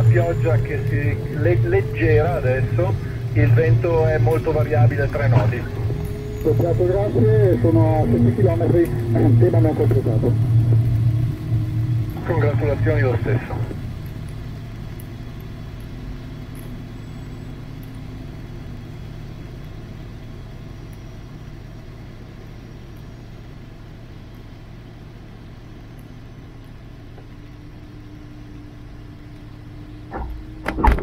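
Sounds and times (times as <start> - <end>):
wheel rolling on wet runway: 0.0 - 22.2
airflow rumble: 0.0 - 31.0
faint steady hum: 0.0 - 31.0.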